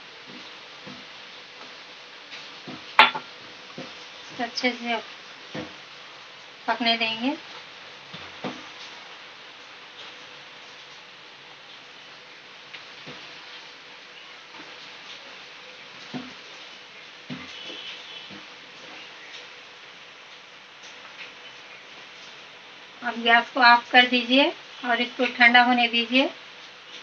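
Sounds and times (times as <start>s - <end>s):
steady quiet hiss: 0.0s - 27.0s
ladle knocking against pot: 2.7s - 3.9s.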